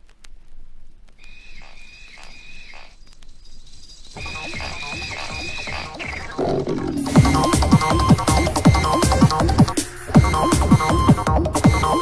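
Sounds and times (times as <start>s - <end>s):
bending high synth tone: 4.2s - 12.0s
electronic rave track: 4.2s - 12.0s
kick drum beat: 7.0s - 12.0s.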